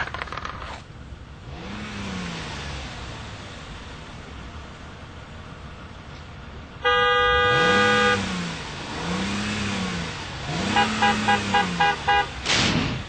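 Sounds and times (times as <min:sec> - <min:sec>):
car engine revving: 0:01.3 - 0:05.7, 0:06.8 - 0:13.0
short quick horn toots: 0:06.8 - 0:08.2
car horn blast: 0:06.8 - 0:08.4, 0:10.6 - 0:12.4.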